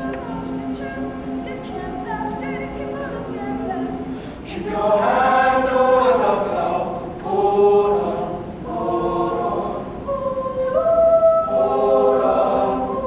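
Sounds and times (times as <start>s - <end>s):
mixed choir singing: 0.0s - 13.0s.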